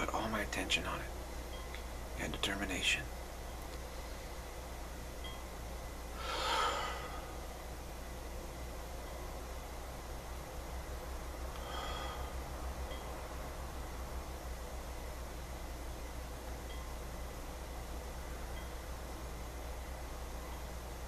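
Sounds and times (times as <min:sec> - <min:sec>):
steady low hum: 0:00.0 - 0:21.0
man breathing quietly: 0:06.1 - 0:07.6, 0:11.5 - 0:12.6.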